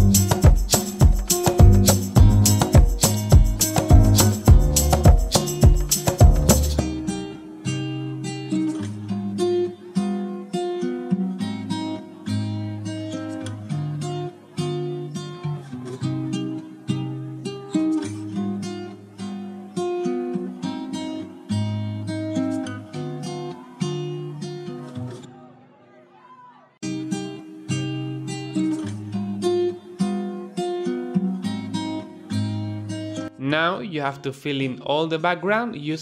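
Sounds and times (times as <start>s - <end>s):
low bass notes: 0.0s - 0.6s, 1.6s - 7.1s
acoustic guitar picking: 0.0s - 25.4s, 26.8s - 33.4s.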